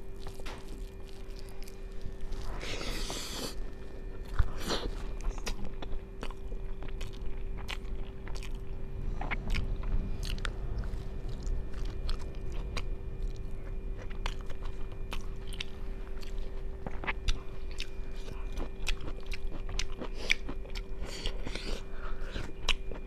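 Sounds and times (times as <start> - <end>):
faint electrical hum: 0.0 - 23.0
person chewing food: 0.0 - 23.0.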